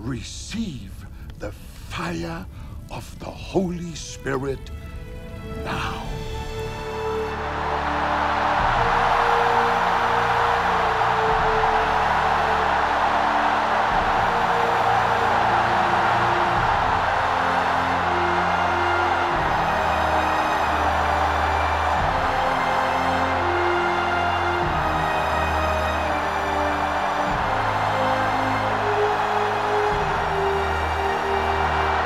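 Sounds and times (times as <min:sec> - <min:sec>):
music with low sustained notes: 0:00.0 - 0:32.0
roar of a large crowd: 0:07.0 - 0:32.0.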